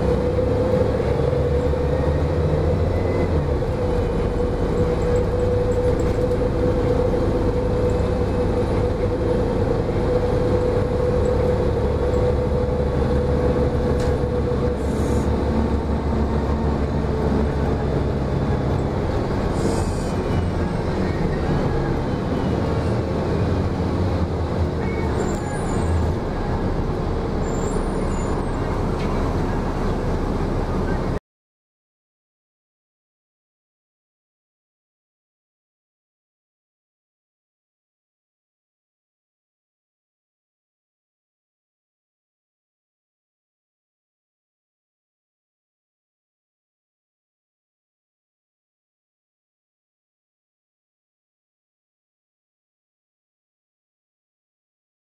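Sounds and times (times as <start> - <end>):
bus engine drone: 0.0 - 31.2
road rumble: 0.0 - 31.2.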